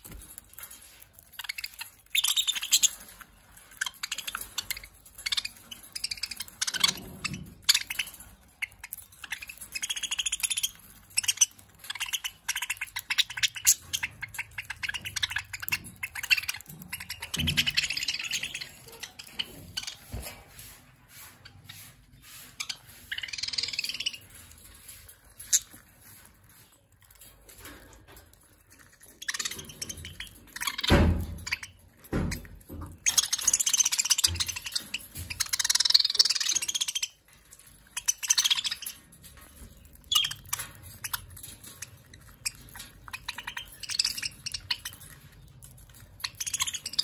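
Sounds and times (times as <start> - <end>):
budgerigars chattering and chirping: 0.8 - 27.7, 28.7 - 47.0
parrot chattering: 22.6 - 24.5.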